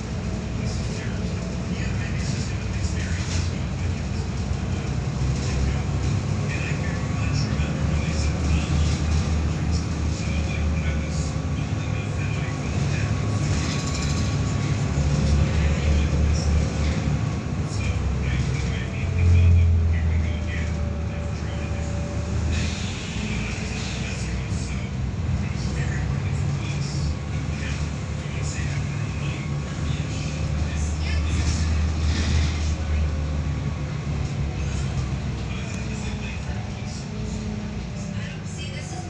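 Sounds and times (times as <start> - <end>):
bus diesel engine drone: 0.0 - 39.0
faint drivetrain whine: 0.0 - 39.0.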